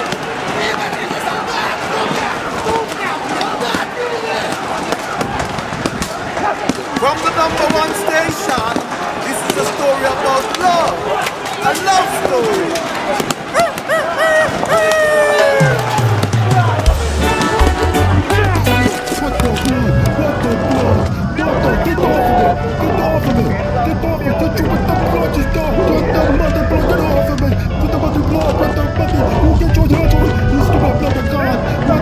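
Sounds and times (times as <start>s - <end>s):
voices crying out: 1.1s - 32.0s
deep bass line: 15.7s - 32.0s.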